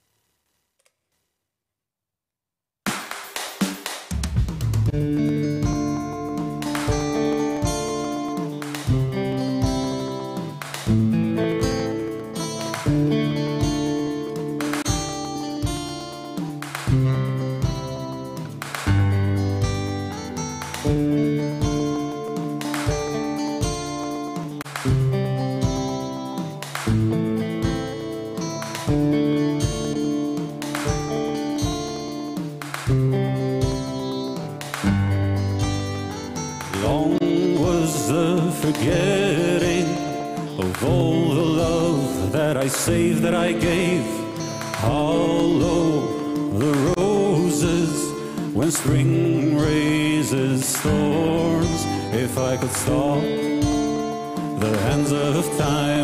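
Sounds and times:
sharp rhythmic hits: 0:02.9 - 0:56.0
acoustic guitar picked notes: 0:04.9 - 0:56.0.

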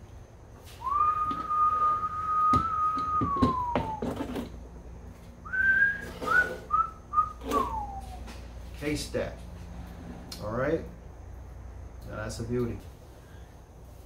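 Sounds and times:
man whistling: 0:00.7 - 0:04.2, 0:05.4 - 0:08.4.

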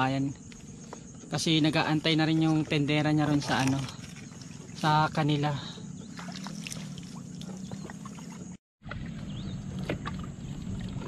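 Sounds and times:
water splashing and dripping: 0:02.3 - 0:05.4, 0:06.0 - 0:11.0.

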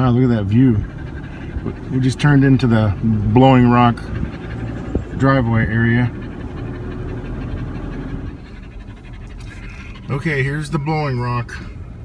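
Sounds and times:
dog panting: 0:00.0 - 0:12.0
low road rumble: 0:00.0 - 0:12.0.

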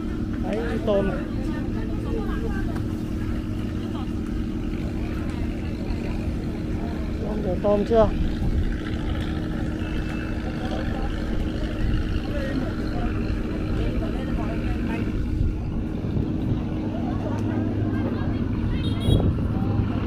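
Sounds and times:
boat engine humming: 0:00.0 - 0:20.0
people talking faintly: 0:08.2 - 0:20.0.

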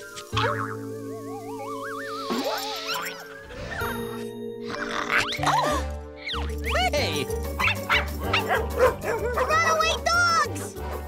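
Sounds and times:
cartoon dogs barking and yipping: 0:04.8 - 0:07.0, 0:07.6 - 0:10.7.

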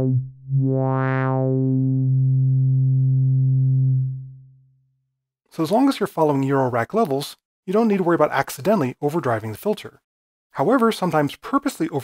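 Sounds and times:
low synth notes: 0:00.0 - 0:04.7.

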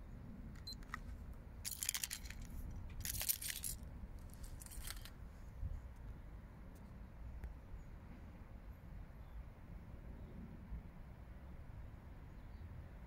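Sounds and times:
high rustling or jingling: 0:01.6 - 0:05.1
wind rumble on microphone: 0:02.2 - 0:08.4.

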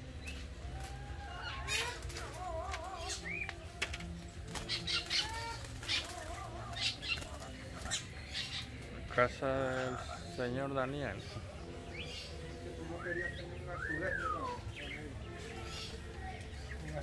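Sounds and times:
birds warbling and chirping: 0:00.0 - 0:17.0.

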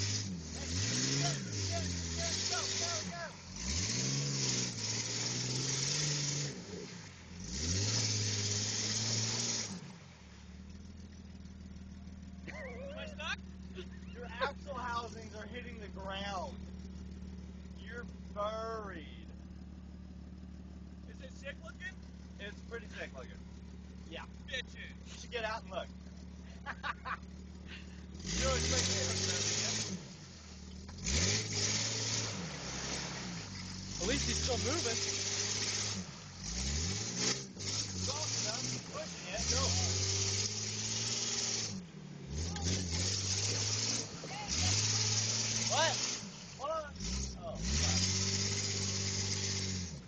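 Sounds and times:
engine running steadily: 0:00.0 - 0:50.0
tyres churning through mud: 0:00.0 - 0:50.0.

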